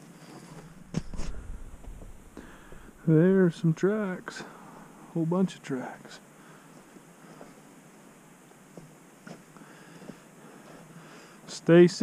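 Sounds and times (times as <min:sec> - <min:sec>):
footsteps on dry dirt: 0:00.0 - 0:03.2, 0:08.7 - 0:11.1
low rumble: 0:00.6 - 0:03.4.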